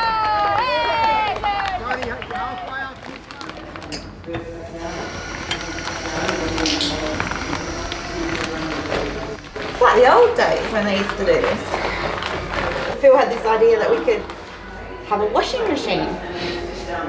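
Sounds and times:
outdoor crowd: 0.0s - 17.0s.

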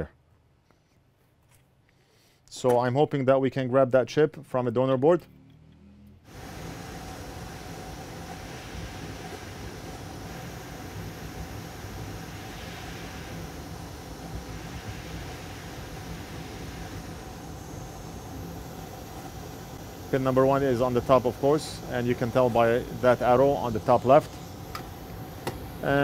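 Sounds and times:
hot air blower hissing: 6.3s - 26.0s.

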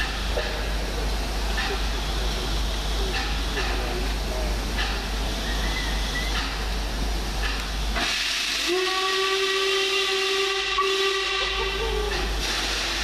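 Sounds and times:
steam hissing: 0.0s - 13.0s
steam locomotive whistle: 8.0s - 13.0s.

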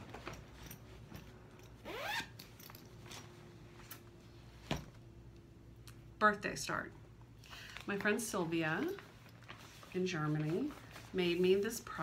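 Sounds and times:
bag zipper pulled: 1.8s - 2.4s.

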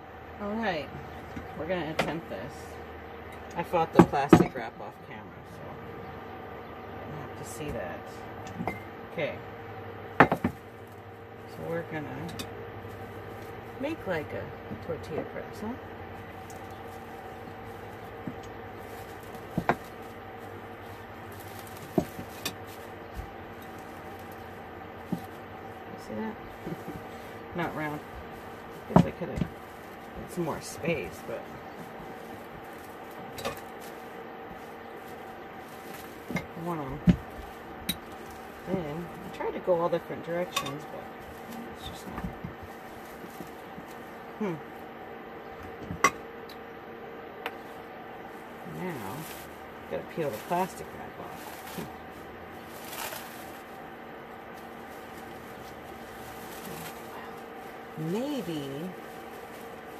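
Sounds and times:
low hum: 0.0s - 59.9s
rolling pin knocking on wooden board: 10.2s - 10.6s.

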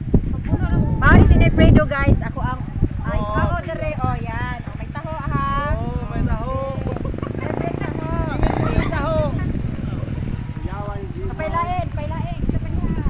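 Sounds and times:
wind buffeting microphone: 0.0s - 13.0s
people talking: 0.4s - 13.0s.

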